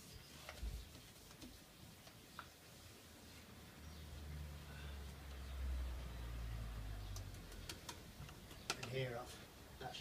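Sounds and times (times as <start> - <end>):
paintbrush tapping plastic tub: 7.1 - 9.2.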